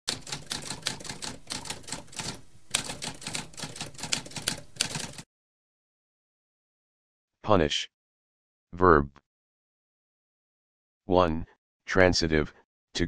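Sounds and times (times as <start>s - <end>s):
typewriter typing: 0.1s - 5.2s.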